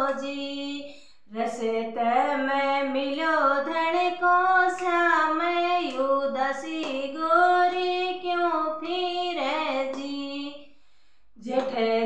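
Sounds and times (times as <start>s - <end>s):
woman singing folk song: 0.0s - 10.6s, 11.4s - 12.0s.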